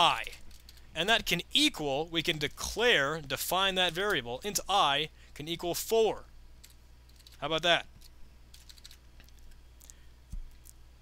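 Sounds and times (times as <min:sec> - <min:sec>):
low steady hum: 0:00.0 - 0:11.0
faint keyboard keystrokes: 0:06.6 - 0:07.4, 0:08.0 - 0:10.8.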